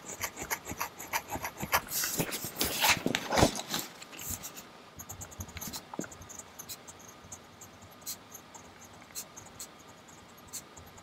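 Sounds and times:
pen nib scratching paper: 0.0 - 3.0, 4.2 - 11.0.

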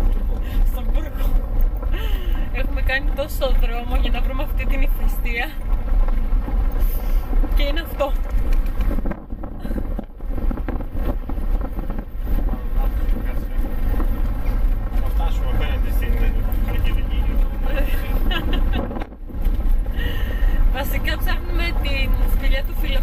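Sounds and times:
voices in car: 0.0 - 5.9, 6.6 - 9.6, 10.6 - 19.2, 19.8 - 23.0
engine and road rumble: 0.0 - 23.0.

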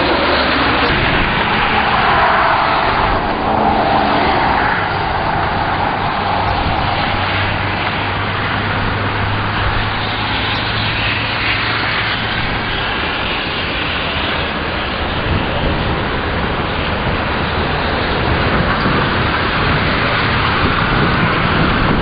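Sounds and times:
car passing: 0.0 - 22.0
low hum of traffic: 0.0 - 22.0.

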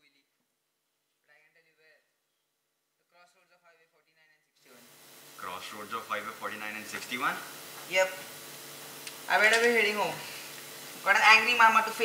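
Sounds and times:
steady hiss: 4.6 - 12.0
man speaking: 5.4 - 7.5.

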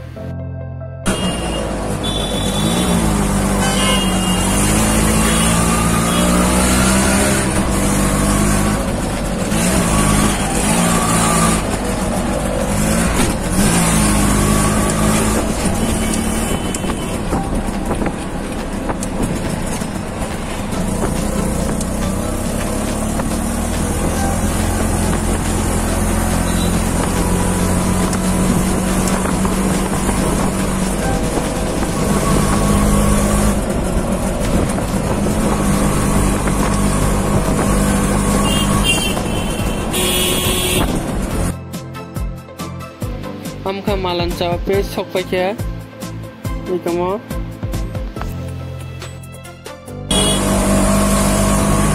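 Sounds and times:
road and traffic noise: 0.0 - 0.3, 1.0 - 51.9
auto-rickshaw engine running: 1.1 - 41.6, 50.1 - 51.9.

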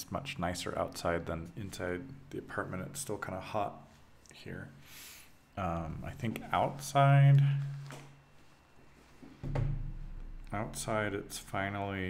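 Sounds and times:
man speaking: 0.0 - 4.8, 5.6 - 8.0, 10.4 - 12.0
man saying um: 5.6 - 7.8.

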